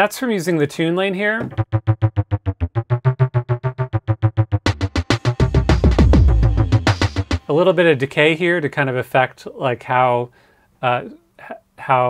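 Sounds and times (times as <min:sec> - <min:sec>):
pitched conga sample bass line: 0:01.4 - 0:07.5.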